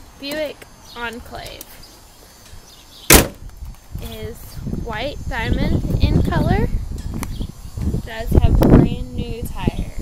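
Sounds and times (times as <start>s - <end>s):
car hood slammed shut: 3.1s - 3.4s.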